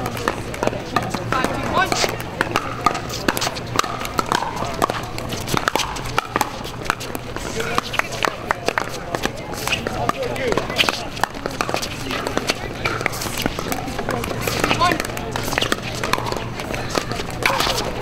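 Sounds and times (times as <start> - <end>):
paddles hitting plastic ball: 0.0 - 18.0.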